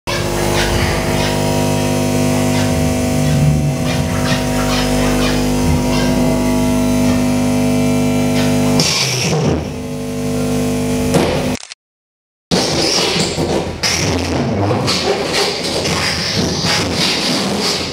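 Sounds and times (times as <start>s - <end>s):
rough noise: 0.1s - 10.8s
loud amplified noise drone: 0.1s - 11.6s.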